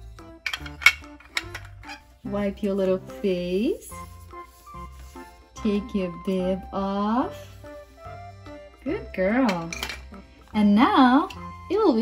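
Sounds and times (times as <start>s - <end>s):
plastic toy dishes clacking: 0.4s - 2.0s.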